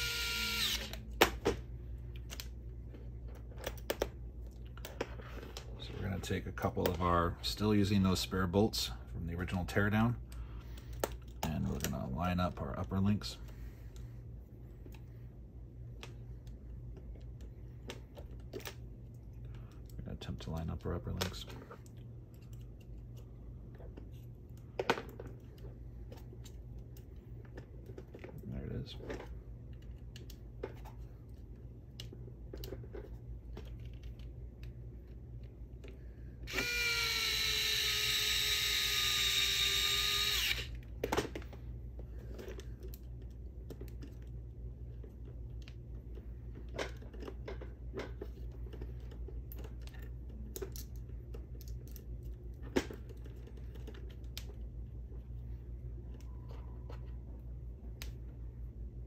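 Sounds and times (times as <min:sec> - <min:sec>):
electric screwdriver whining: 0:00.0 - 0:01.0, 0:36.5 - 0:40.8.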